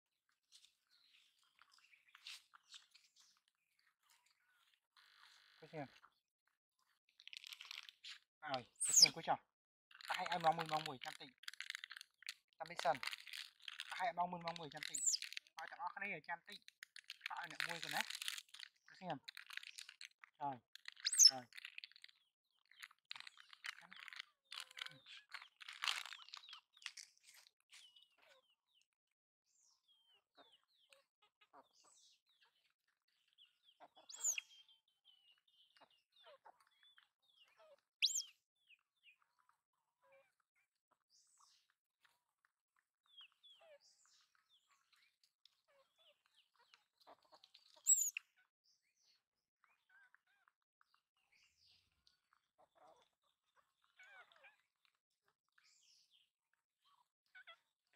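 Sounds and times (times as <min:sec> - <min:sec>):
plastic snack packet crinkling: 0:07.2 - 0:08.2, 0:09.9 - 0:15.6, 0:16.5 - 0:27.5.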